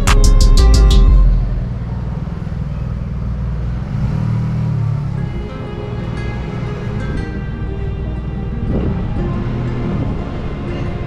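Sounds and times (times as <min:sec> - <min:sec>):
scooter engine rumbling: 0:00.0 - 0:11.0.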